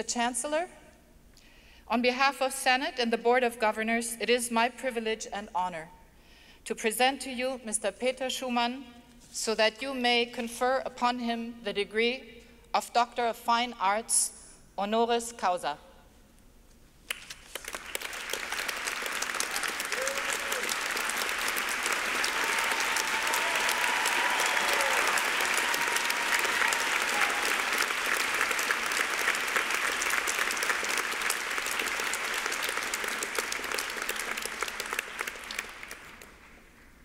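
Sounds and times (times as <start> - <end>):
audience applauding: 17.1 - 36.8.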